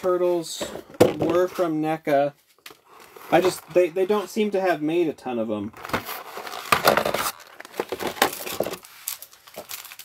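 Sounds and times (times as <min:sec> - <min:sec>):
plastic bag crinkling: 0:06.4 - 0:10.0.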